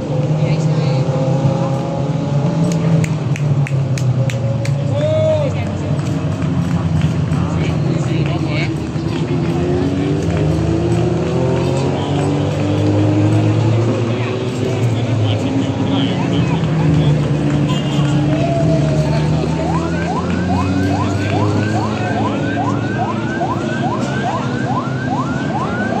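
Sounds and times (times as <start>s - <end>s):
race car engines passing: 0.0s - 26.0s
vehicle siren whooping: 18.1s - 26.0s.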